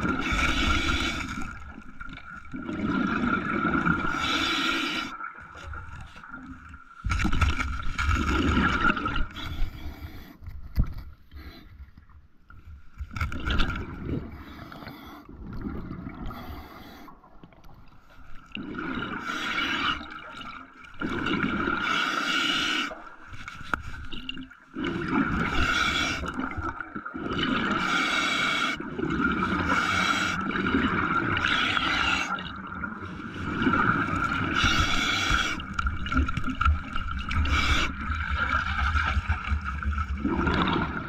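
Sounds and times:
water gurgling and scraping: 0.0 - 41.0.

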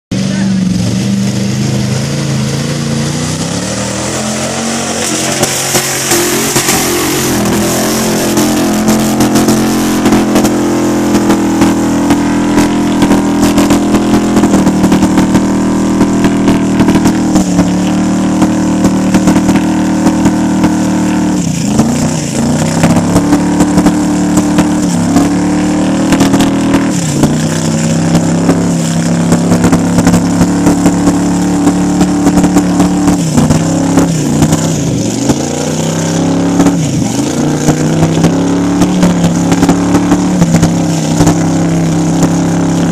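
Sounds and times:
engine revving high: 0.1 - 42.9.

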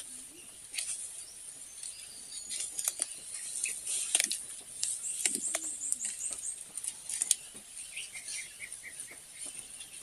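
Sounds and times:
clicks and rustles: 1.8 - 7.8.

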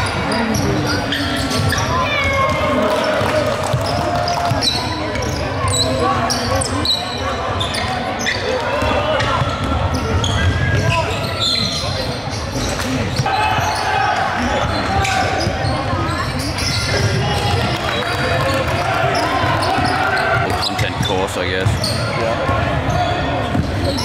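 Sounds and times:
voices calling and shouting: 0.0 - 24.0.

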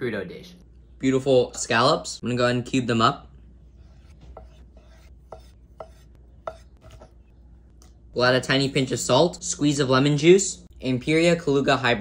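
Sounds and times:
knife chopping on wooden board: 4.3 - 7.2.

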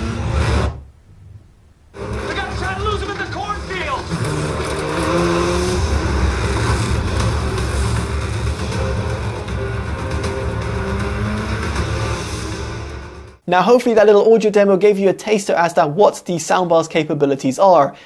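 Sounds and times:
bass-heavy film score: 0.0 - 13.4
vehicle noise: 0.0 - 13.4
person speaking: 2.2 - 4.1, 13.4 - 18.0.

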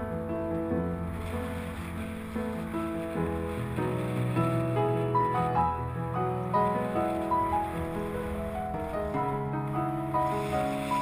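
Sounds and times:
solo piano music: 0.0 - 11.0.

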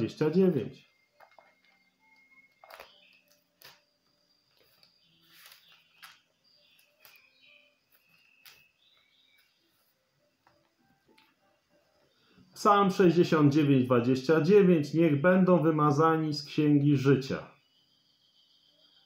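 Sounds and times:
paper pages rustling: 1.2 - 10.6.

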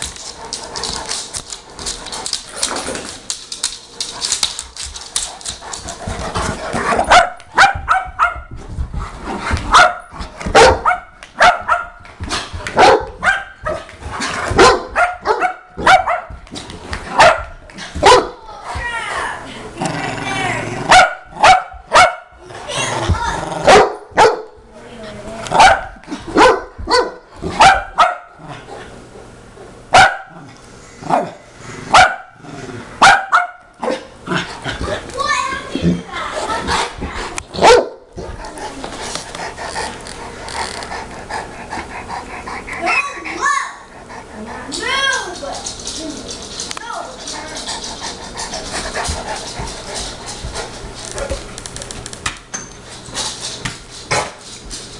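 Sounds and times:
dogs barking: 6.8 - 8.5, 9.7 - 12.0, 12.8 - 13.8, 14.5 - 16.4, 17.1 - 18.4, 20.9 - 22.4, 23.6 - 24.6, 25.5 - 28.4, 29.9 - 30.4, 31.9 - 32.4, 33.0 - 34.0, 37.5 - 38.1.

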